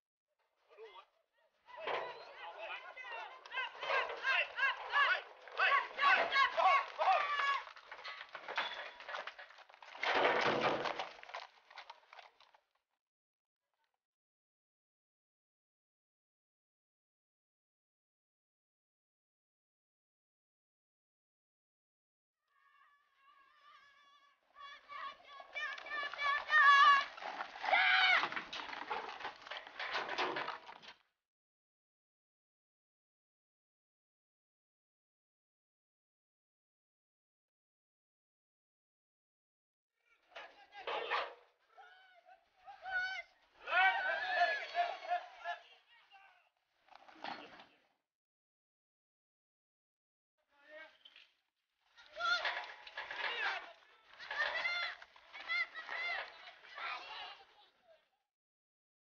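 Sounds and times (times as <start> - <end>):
crowd shouting: 1.7 - 8.0, 22.7 - 28.5, 41.8 - 46.1
hoofbeats galloping on dirt: 2.7 - 12.7, 24.6 - 30.9.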